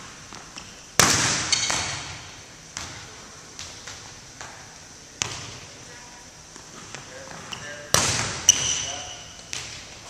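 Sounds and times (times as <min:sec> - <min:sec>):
volleyball smack: 0:01.0 - 0:02.2, 0:07.9 - 0:08.7
short high squeak: 0:08.5 - 0:09.3.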